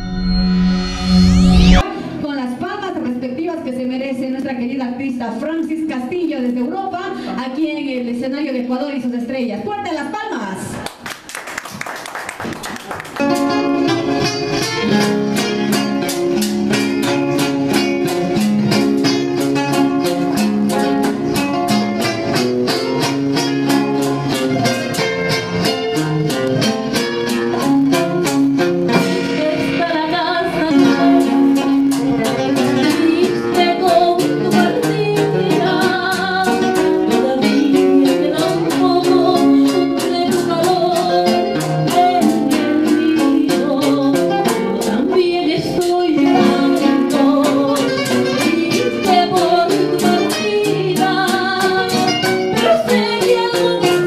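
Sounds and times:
acoustic guitars strumming: 0:12.8 - 0:54.0
woman singing: 0:28.9 - 0:54.0.

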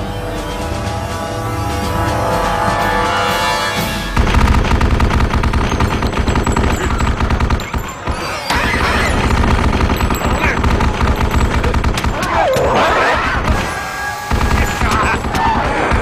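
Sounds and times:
anti-aircraft gun firing rapid bursts: 0:04.2 - 0:16.0
creatures shrieking: 0:06.8 - 0:09.5, 0:12.0 - 0:16.0.

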